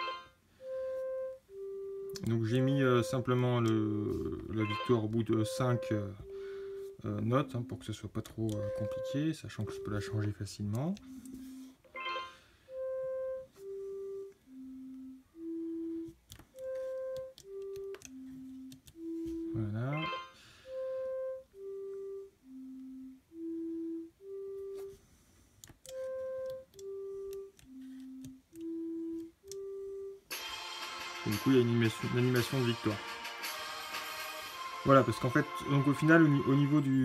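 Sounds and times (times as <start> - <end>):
electronic toy beeping: 2.2 - 13.4.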